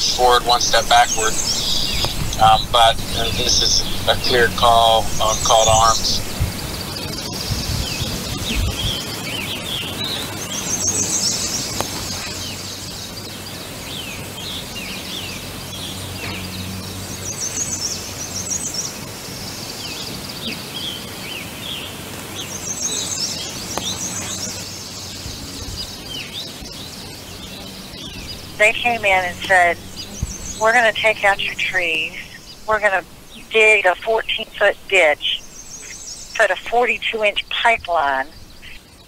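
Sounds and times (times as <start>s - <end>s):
bird trilled song: 0.0s - 39.0s.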